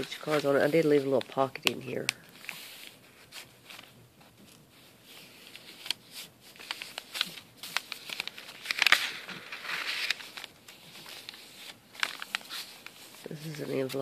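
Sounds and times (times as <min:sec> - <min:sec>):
page flipped over: 0:00.0 - 0:14.0
paper rustling and crinkling: 0:00.0 - 0:14.0.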